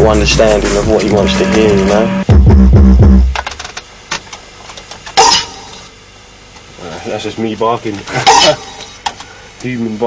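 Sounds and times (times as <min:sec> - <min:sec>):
deep bass sliding down: 0:00.0 - 0:03.3.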